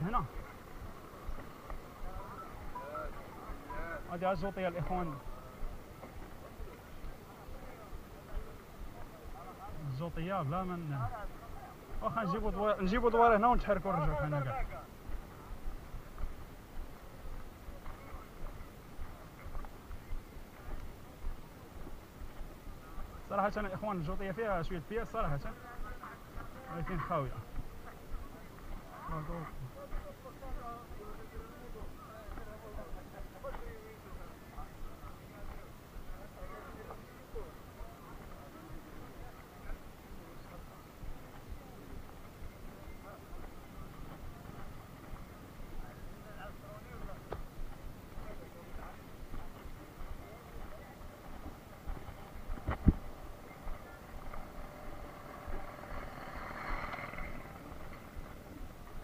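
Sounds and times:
faint background noise: 0:00.0 - 0:59.0
market background noise: 0:00.0 - 0:59.0
wind rumbling on microphone: 0:50.5 - 0:59.0.

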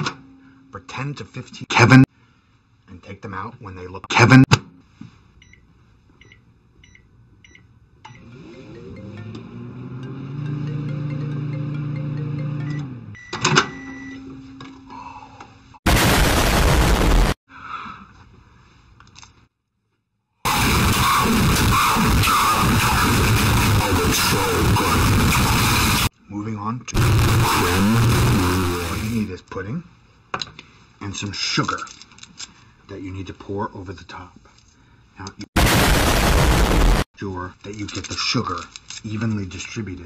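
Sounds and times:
microwave keypad beeps: 0:12.5 - 0:14.3
distorted noise with music: 0:15.9 - 0:17.4, 0:20.5 - 0:26.1, 0:27.0 - 0:29.3, 0:35.6 - 0:37.1
loud harsh noise blast: 0:15.9 - 0:17.4, 0:20.5 - 0:26.1, 0:27.0 - 0:29.3, 0:35.6 - 0:37.1.

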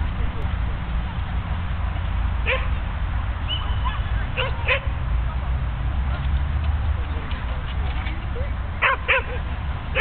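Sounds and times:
low steady rumble: 0:00.0 - 0:10.0
dog barking: 0:02.5 - 0:02.8, 0:03.8 - 0:04.9, 0:08.8 - 0:09.4.

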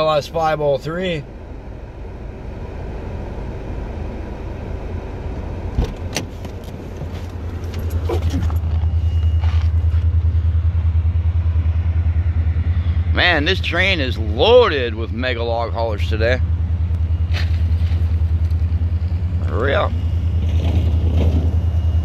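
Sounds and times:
low engine rumble: 0:00.0 - 0:22.0
car door clicks: 0:05.7 - 0:07.9.

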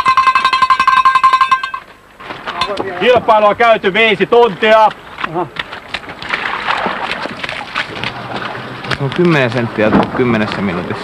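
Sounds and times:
sustained bell-like ringing tone: 0:00.0 - 0:01.9.

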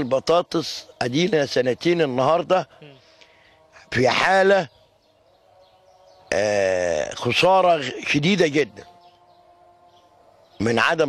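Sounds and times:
man talking: 0:00.0 - 0:02.8, 0:03.8 - 0:04.7, 0:06.3 - 0:08.8, 0:10.6 - 0:11.0.

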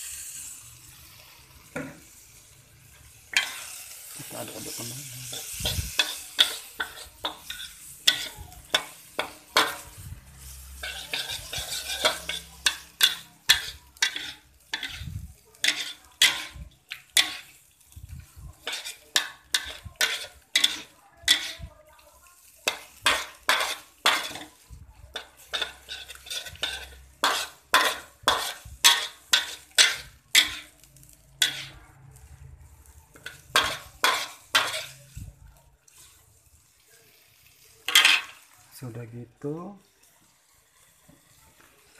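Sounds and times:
spatula scraping frying pan: 0:00.0 - 0:17.8, 0:18.4 - 0:21.7, 0:22.6 - 0:35.2, 0:37.8 - 0:38.5
frying sizzle: 0:00.0 - 0:41.9.

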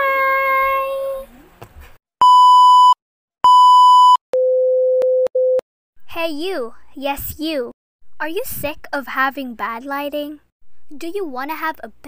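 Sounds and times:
high beeps: 0:02.2 - 0:05.6.

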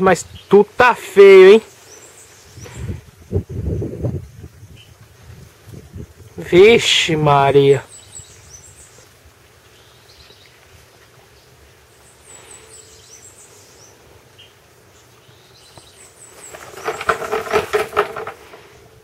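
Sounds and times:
small birds chirping: 0:00.0 - 0:18.8.

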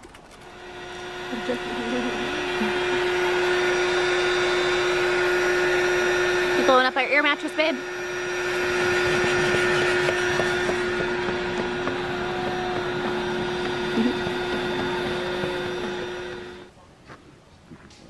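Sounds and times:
electric air pump humming: 0:00.3 - 0:16.7.

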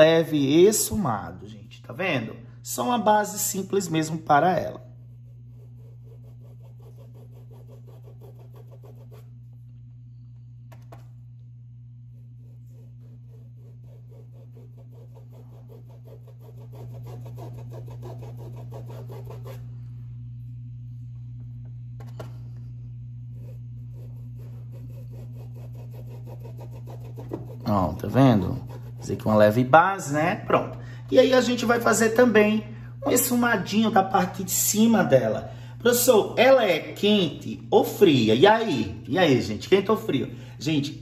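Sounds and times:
steady low hum: 0:00.0 - 0:41.0
paintbrush rubbing on cloth: 0:04.9 - 0:09.7, 0:11.9 - 0:19.9, 0:23.2 - 0:29.6.

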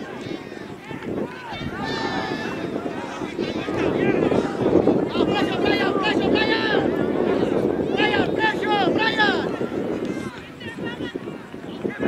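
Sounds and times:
distant shouts and calls: 0:00.0 - 0:11.2.

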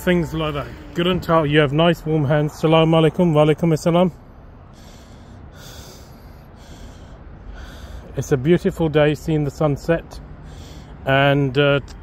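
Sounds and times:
person breathing: 0:04.6 - 0:08.2, 0:10.4 - 0:11.0.

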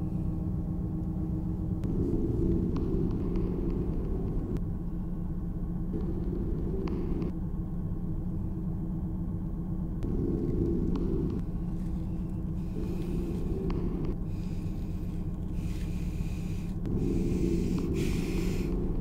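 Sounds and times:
higher hum: 0:00.0 - 0:08.8, 0:10.0 - 0:19.0.

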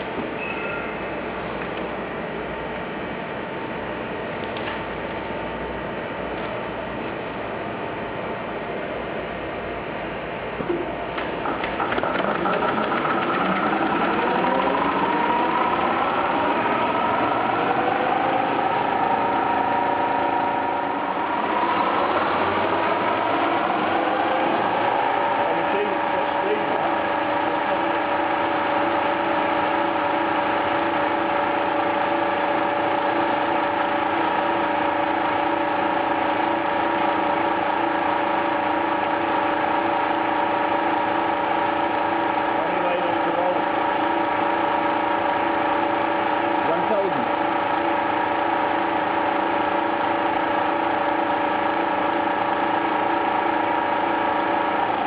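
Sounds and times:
machine whirring with held tones: 0:10.2 - 0:55.0
servo drive whine: 0:10.6 - 0:37.8
machine clicks: 0:11.2 - 0:17.1.

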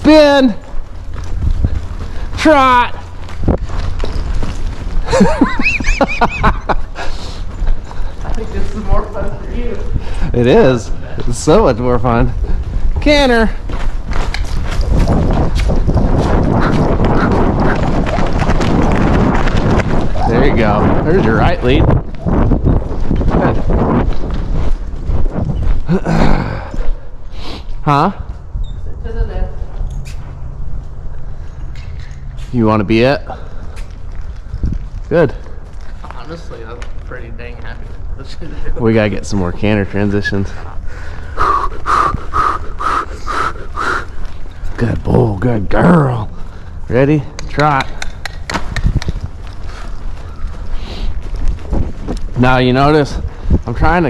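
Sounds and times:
hoofbeats on soft dirt: 0:00.0 - 0:38.1, 0:38.9 - 0:54.0
low rumble on microphone: 0:09.4 - 0:27.2.

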